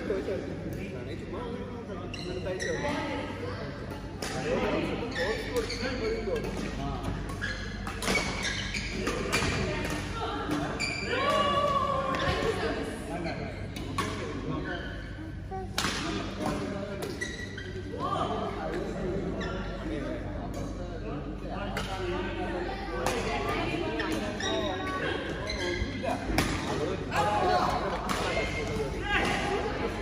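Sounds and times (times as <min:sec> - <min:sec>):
murmur of voices: 0:00.0 - 0:30.0
shoes squeaking on court floor: 0:02.0 - 0:03.0, 0:04.9 - 0:10.0, 0:16.2 - 0:18.0, 0:23.5 - 0:26.8.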